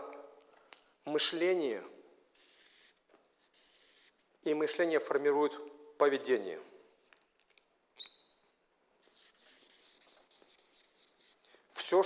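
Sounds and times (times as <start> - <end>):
marker rubbing on paper: 2.3 - 4.4, 9.0 - 11.5.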